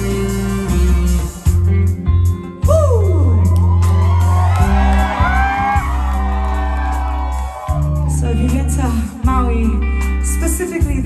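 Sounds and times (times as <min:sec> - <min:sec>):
live band playing chords: 0:00.0 - 0:11.0
crowd whooping and cheering: 0:02.6 - 0:09.0.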